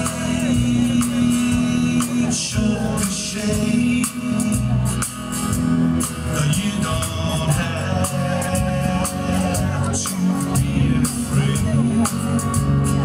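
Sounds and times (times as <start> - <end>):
drum beat with cymbal hits: 0.0 - 13.0
electric guitar: 0.0 - 13.0
man singing: 0.0 - 13.0
strummed acoustic guitar: 0.0 - 13.0.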